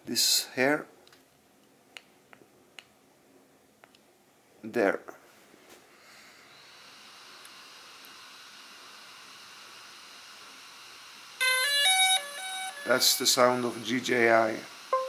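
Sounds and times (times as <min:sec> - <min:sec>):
faint steady hiss: 0:00.0 - 0:15.0
electronic power-on chime: 0:11.4 - 0:14.0.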